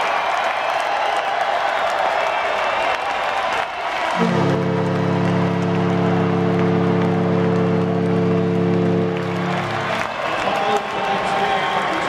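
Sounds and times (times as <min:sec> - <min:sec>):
crowd cheering and applauding: 0:00.0 - 0:12.0
arena horn low chord: 0:04.2 - 0:10.1.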